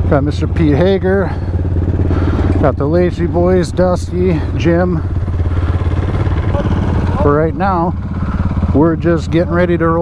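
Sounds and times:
off-road engines idling: 0.0 - 10.0.

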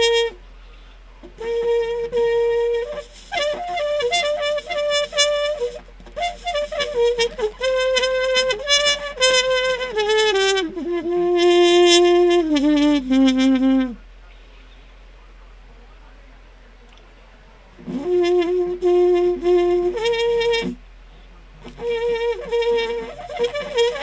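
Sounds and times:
solo trumpet melody: 0.0 - 0.4, 1.3 - 14.0, 17.8 - 20.8, 21.6 - 24.0.

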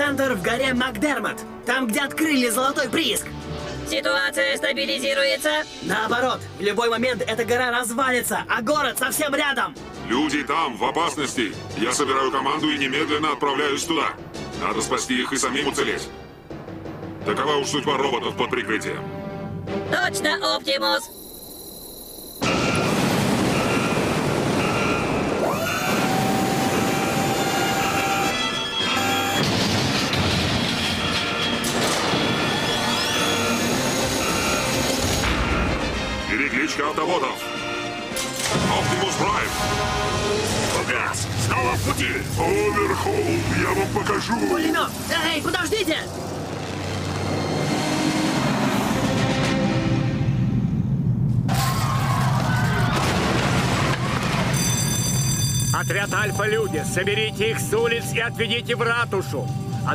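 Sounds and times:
heavy machinery moving: 22.4 - 36.2, 46.0 - 50.0
cartoon action music: 22.4 - 46.0
rising sweep: 42.3 - 51.5.

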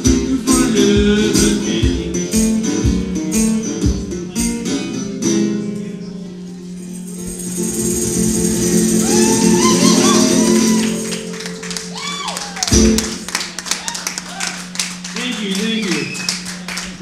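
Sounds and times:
guitar chord ringing: 0.0 - 13.6
crowd whooping and cheering: 8.7 - 17.0
audience clapping: 10.0 - 17.0.

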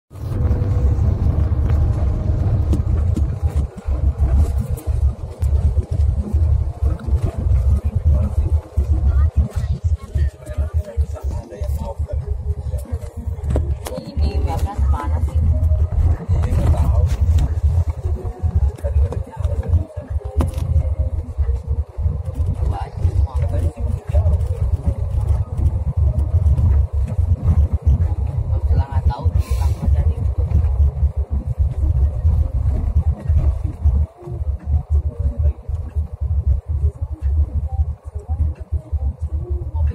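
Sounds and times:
vehicle road noise: 0.1 - 39.9
wind buffeting microphone: 0.1 - 39.9.

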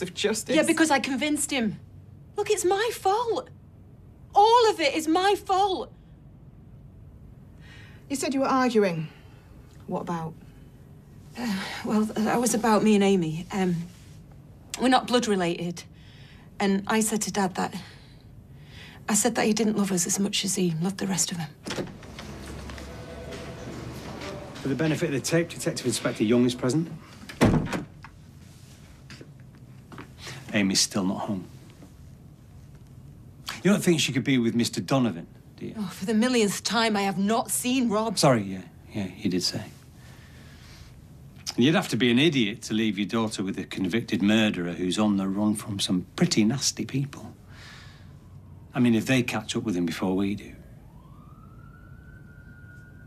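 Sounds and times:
distant siren: 21.6 - 27.1, 47.1 - 53.0
door thudding shut: 27.3 - 28.0.

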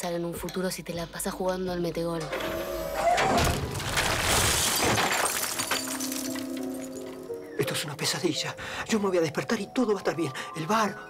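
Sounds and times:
crash of things shattering: 3.4 - 7.2.

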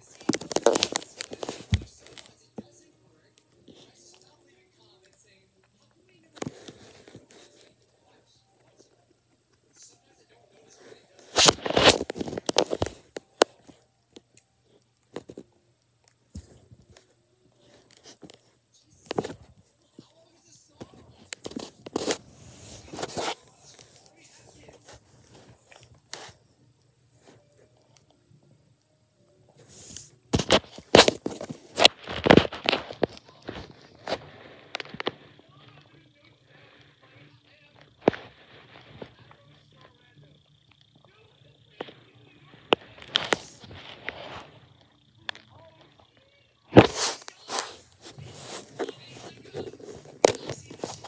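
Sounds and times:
crinkling and scraping from handling: 0.0 - 2.4, 11.2 - 13.8, 20.8 - 26.4, 29.6 - 35.4, 46.7 - 51.0
person biting and chewing food: 0.1 - 1.8.

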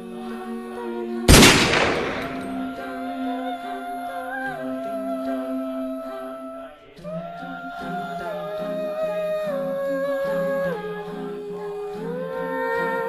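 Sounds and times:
hummed vocal music: 0.0 - 13.0
gunshot: 1.3 - 2.7.

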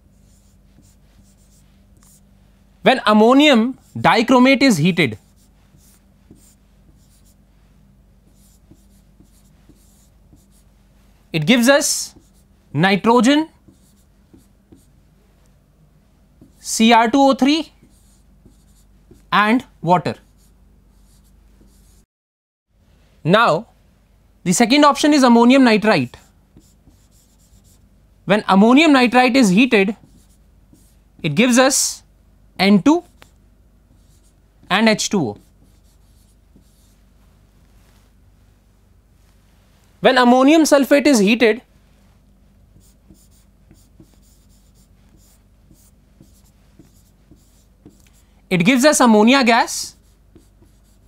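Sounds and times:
chalk scratching on chalkboard: 0.1 - 2.3, 5.1 - 7.4, 8.3 - 10.7, 11.9 - 12.5, 13.6 - 14.9, 16.4 - 16.7, 17.4 - 19.3, 20.2 - 22.1, 26.1 - 27.8, 29.4 - 31.0, 33.0 - 37.0, 42.8 - 48.2, 49.7 - 51.0
chalk tapping on chalkboard: 0.3 - 2.2, 5.3 - 7.4, 8.3 - 10.6, 12.1 - 12.4, 13.6 - 14.9, 16.4 - 16.6, 17.8 - 19.3, 21.1 - 22.0, 26.6 - 27.8, 30.0 - 31.0, 35.3 - 36.9, 42.8 - 48.2, 50.0 - 51.0.

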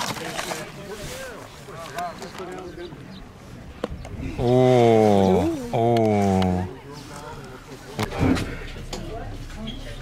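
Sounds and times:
takeout packaging rustling: 0.0 - 1.0
people talking: 4.2 - 10.0.

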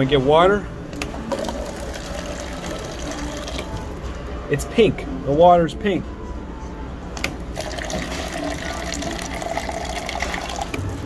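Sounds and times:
water running into paper cup: 1.3 - 3.8, 7.5 - 10.8
dispenser click: 7.2 - 7.5.

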